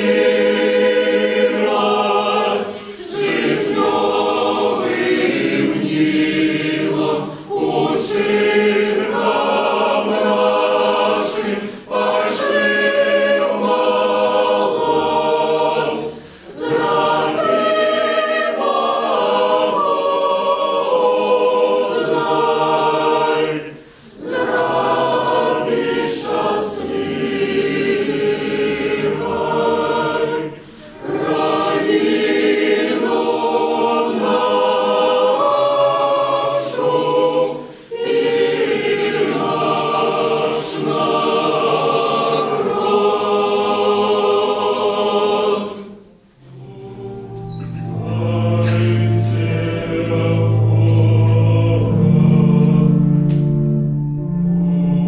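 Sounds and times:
choir singing a cappella: 0.0s - 55.0s.

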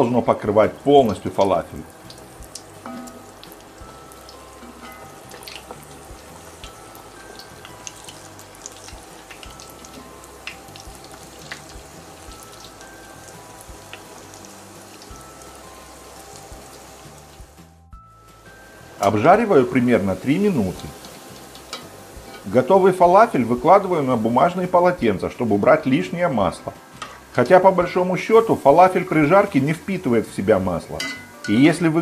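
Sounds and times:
deep-frying in hot oil: 0.0s - 32.0s
soft background music: 0.0s - 32.0s
oil popping and crackling: 0.8s - 17.6s, 18.9s - 23.6s.

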